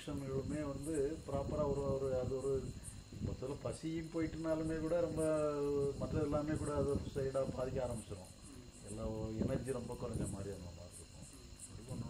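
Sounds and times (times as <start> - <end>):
high-pitched insect chirping: 0.0 - 12.0
man speaking: 0.0 - 12.0.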